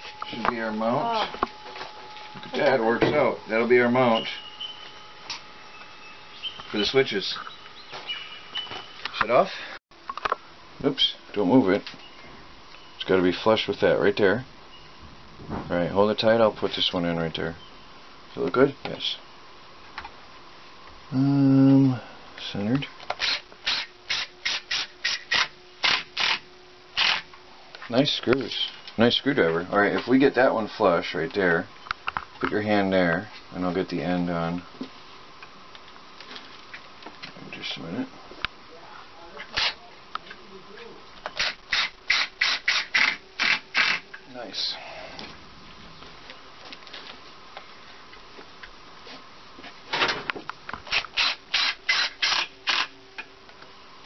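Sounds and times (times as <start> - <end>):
impact driver driving screw into wood: 23.1 - 26.4, 27.0 - 27.3, 41.4 - 44.0, 50.9 - 52.9.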